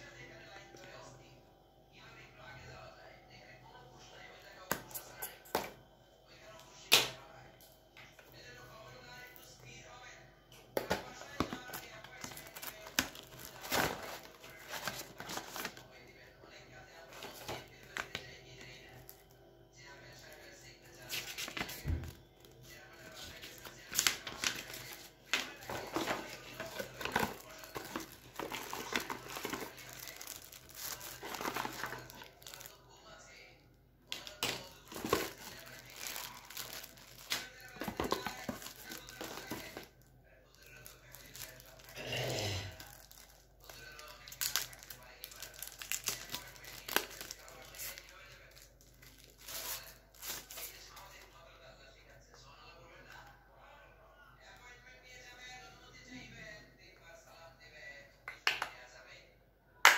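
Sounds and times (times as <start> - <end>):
packaging crinkling and rustling: 10.8 - 15.9, 17.0 - 18.3, 21.0 - 32.8, 34.1 - 42.0, 42.8 - 51.2.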